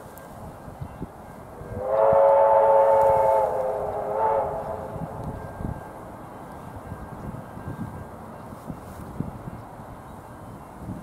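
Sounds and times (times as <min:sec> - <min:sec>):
train whistle: 0:01.6 - 0:05.9.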